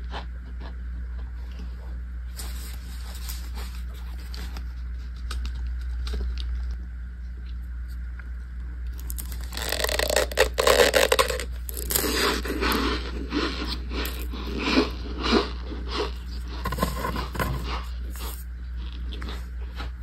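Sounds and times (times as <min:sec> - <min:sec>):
steady low hum: 0:00.0 - 0:20.0
dry squeaky crunching by hand: 0:09.0 - 0:18.4.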